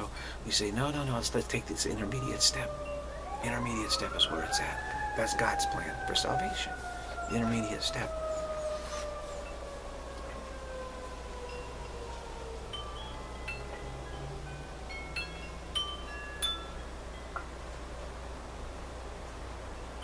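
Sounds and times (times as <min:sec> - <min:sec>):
light chime notes: 0:00.0 - 0:04.1, 0:12.7 - 0:17.4
long falling tone: 0:01.7 - 0:15.2.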